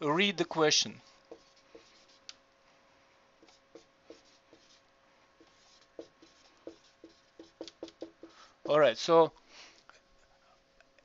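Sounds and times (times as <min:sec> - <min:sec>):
marker squeaking on whiteboard: 0:01.0 - 0:02.3, 0:03.4 - 0:04.8, 0:05.4 - 0:08.4.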